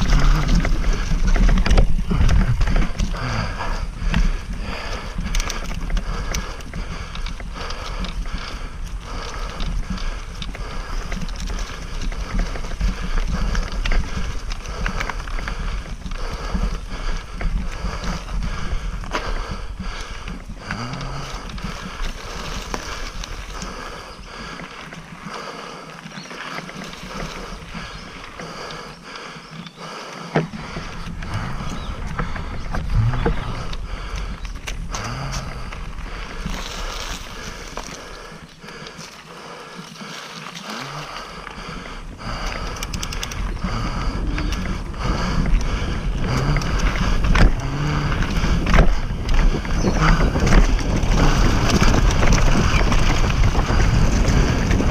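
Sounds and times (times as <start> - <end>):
wind buffeting microphone: 0.0 - 24.7, 27.1 - 38.9, 41.0 - 54.9
bike rattling over bumps: 0.0 - 54.9
tyres rolling over dirt: 0.0 - 54.9.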